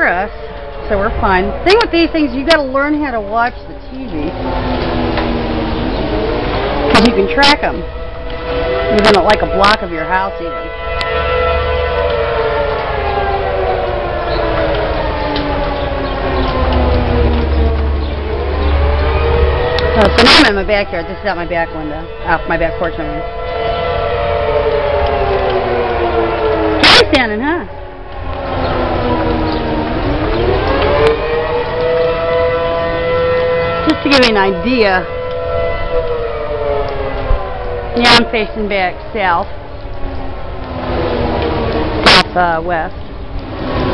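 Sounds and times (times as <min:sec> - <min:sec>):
low rumble: 0:00.0 - 0:43.9
tornado warning siren wailing: 0:00.0 - 0:43.9.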